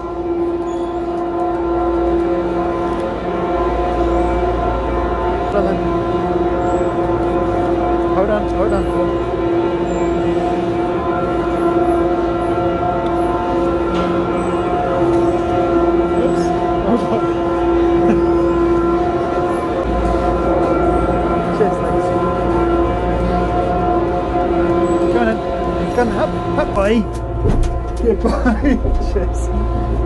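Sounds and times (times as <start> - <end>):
low machinery rumble: 0.0 - 30.0
machinery whine: 6.5 - 30.0.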